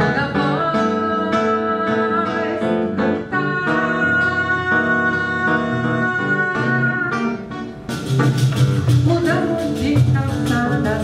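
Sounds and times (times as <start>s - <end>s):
acoustic guitar: 0.0s - 11.0s.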